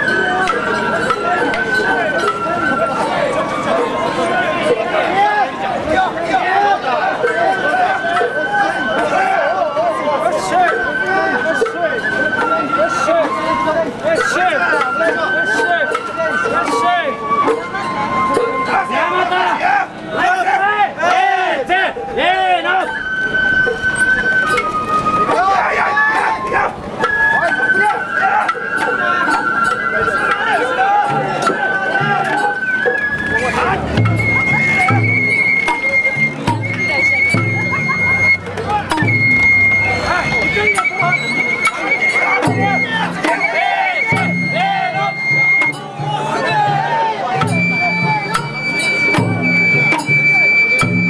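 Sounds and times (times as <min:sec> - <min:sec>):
bamboo flute long high note: 0:00.0 - 0:51.0
crew shouting: 0:00.1 - 0:51.0
large drum strokes ringing: 0:26.8 - 0:51.0.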